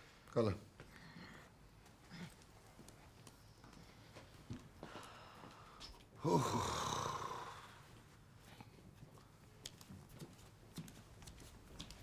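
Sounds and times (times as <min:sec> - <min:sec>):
faint footsteps: 0:01.6 - 0:06.2, 0:07.8 - 0:12.0.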